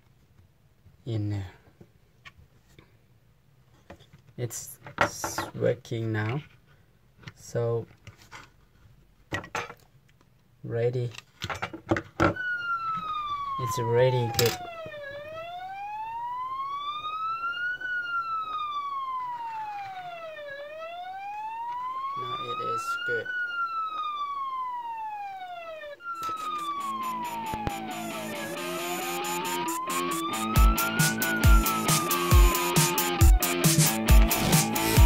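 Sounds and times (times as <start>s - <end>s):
electronic police siren wailing: 12.2s - 35.0s
music with heavy beat: 26.3s - 35.0s.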